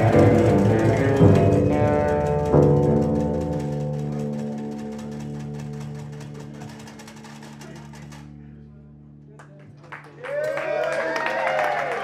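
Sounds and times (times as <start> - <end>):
percussion pulse: 0.0 - 8.4
electric guitar: 0.0 - 9.2
double bass: 0.0 - 9.5.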